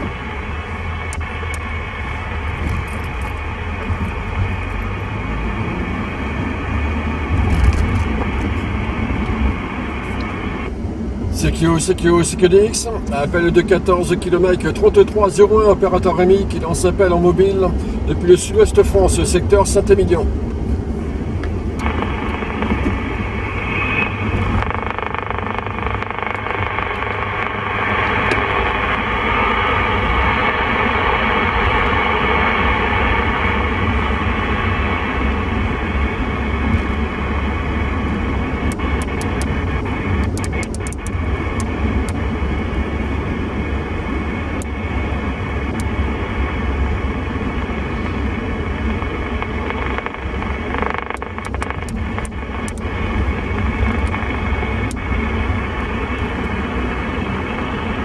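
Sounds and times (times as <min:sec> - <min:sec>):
radio static hiss: 0:00.0 - 0:20.4, 0:21.0 - 0:58.0
car road rumble: 0:00.0 - 0:58.0
faint clicks: 0:49.0 - 0:52.8.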